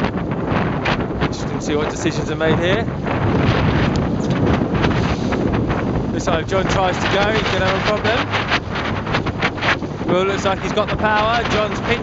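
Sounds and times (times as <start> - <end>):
choppy water: 0.0 - 12.0
wind buffeting microphone: 0.0 - 12.0.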